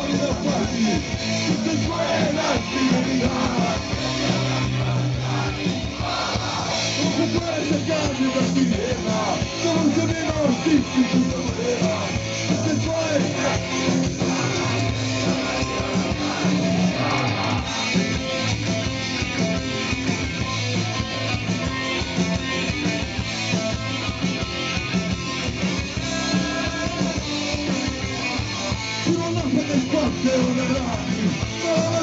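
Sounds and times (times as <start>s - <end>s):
punk folk band playing live: 0.0s - 32.0s.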